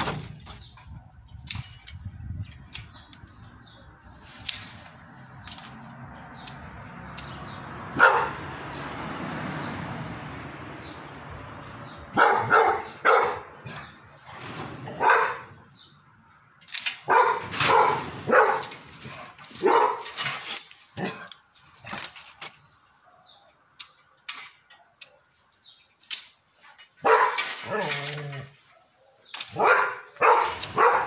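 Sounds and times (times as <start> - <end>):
dog barking: 8.0 - 8.4, 12.1 - 13.6, 14.9 - 15.6, 17.1 - 18.8, 19.6 - 20.1, 27.0 - 27.9, 28.6 - 31.0.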